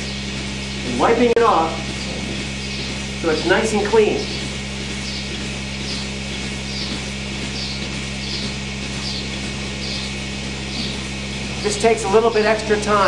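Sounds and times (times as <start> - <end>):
milking machinery hum: 0.0 - 13.0.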